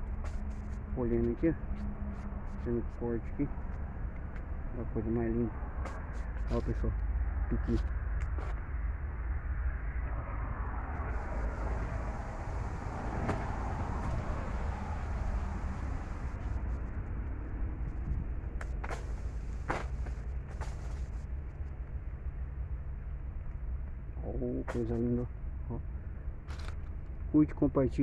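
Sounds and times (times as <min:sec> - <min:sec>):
steady low rumble: 0:00.0 - 0:28.0.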